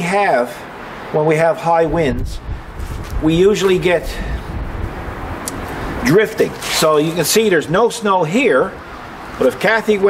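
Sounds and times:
outdoor rumble and hiss: 0:00.0 - 0:10.0
small click: 0:05.4 - 0:05.6.

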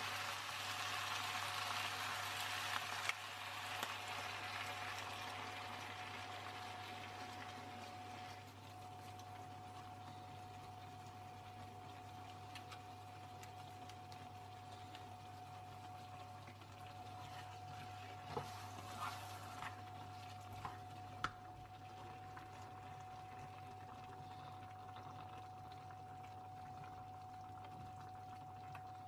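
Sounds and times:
cream bubbling in frying pan: 0:00.0 - 0:29.0.

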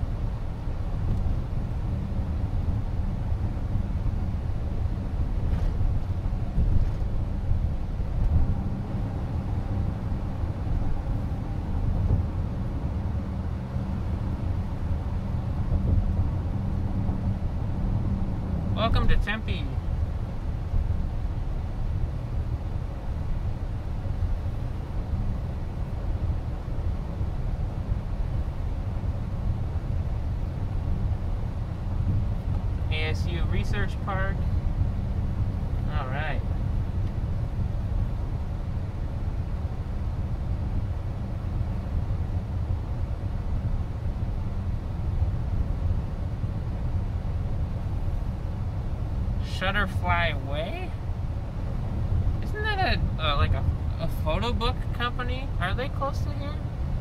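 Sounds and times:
road and tyre rumble in car: 0:00.0 - 0:57.0.

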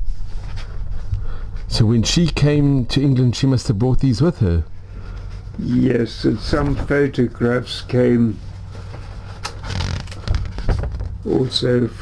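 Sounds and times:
paper rustling: 0:08.4 - 0:11.1.

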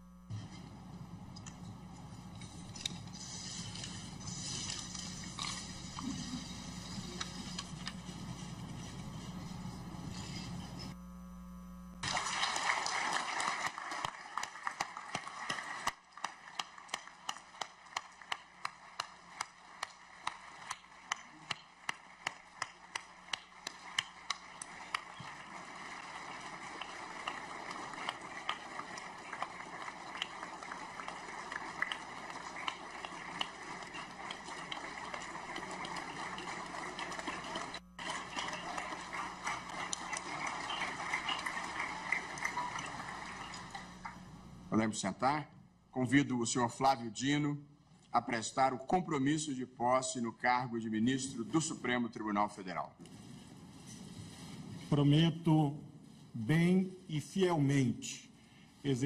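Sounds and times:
clapping in unison: 0:12.0 - 0:43.8
audience applauding: 0:12.0 - 0:44.1.

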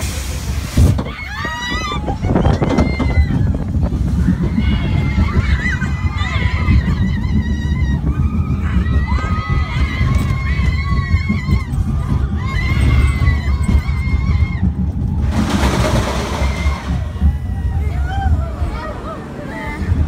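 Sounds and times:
wind buffeting microphone: 0:00.5 - 0:20.0
riders screaming: 0:00.8 - 0:20.0
rushing noise: 0:02.2 - 0:18.5.

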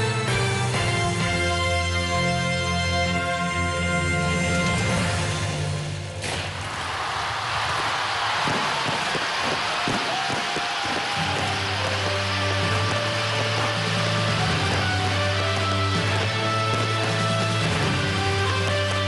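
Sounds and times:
loud show music: 0:00.0 - 0:06.3, 0:11.0 - 0:19.0
fireworks hissing and crackling: 0:06.2 - 0:19.0.

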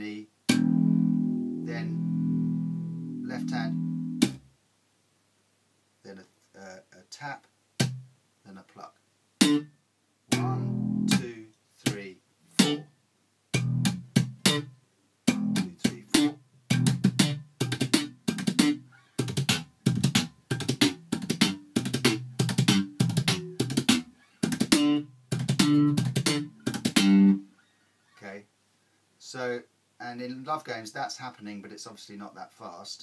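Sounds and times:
slap bass guitar: 0:00.5 - 0:04.4, 0:09.4 - 0:09.7, 0:10.3 - 0:12.0, 0:12.6 - 0:12.9, 0:13.6 - 0:14.7, 0:15.3 - 0:27.4.

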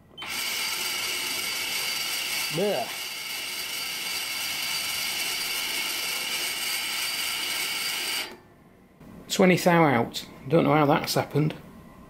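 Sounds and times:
lathe gear whine: 0:00.2 - 0:08.4.

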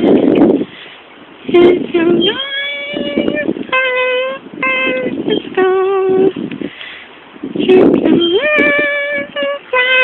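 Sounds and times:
woman singing unaccompanied: 0:01.4 - 0:06.6, 0:07.4 - 0:10.0.

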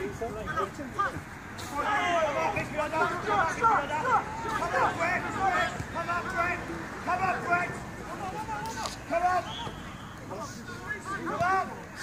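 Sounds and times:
players shouting: 0:00.1 - 0:12.0.

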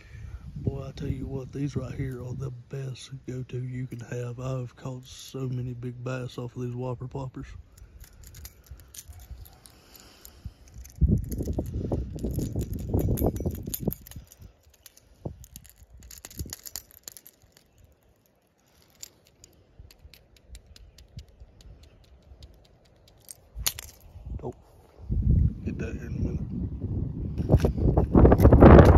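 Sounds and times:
metal hooks clicking and jangling: 0:07.7 - 0:24.2
low rumbling handling noise: 0:07.7 - 0:28.9.

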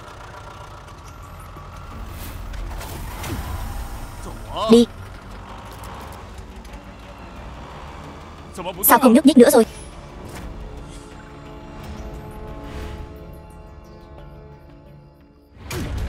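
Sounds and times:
car engine rumbling: 0:00.0 - 0:12.6.

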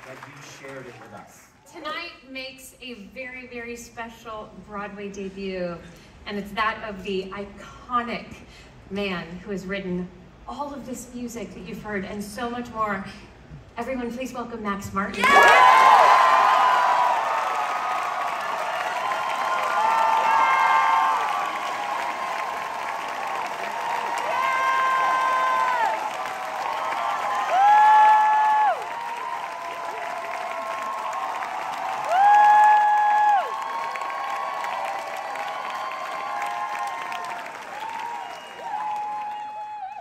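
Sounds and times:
audience applauding and cheering: 0:00.0 - 0:01.7, 0:15.2 - 0:40.0.

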